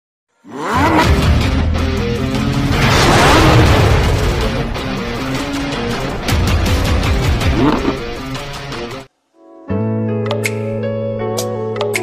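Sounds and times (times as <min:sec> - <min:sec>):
noisy whoosh: 0:02.6 - 0:07.0.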